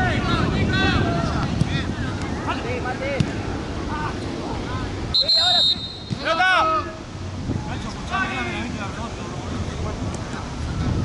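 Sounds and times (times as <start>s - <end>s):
players shouting: 0.0s - 7.1s
referee's whistle blast: 5.1s - 6.3s.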